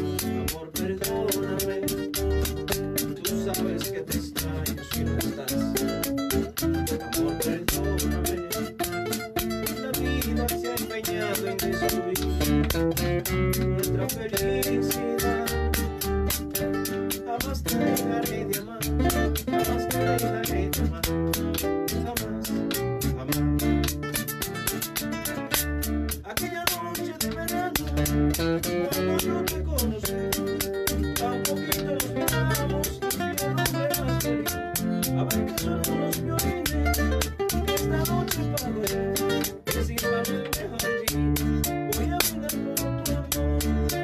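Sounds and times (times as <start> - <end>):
acoustic guitars picking melodies: 0.0 - 44.0
low bass notes: 0.0 - 44.0
steady percussion tick: 0.0 - 44.0.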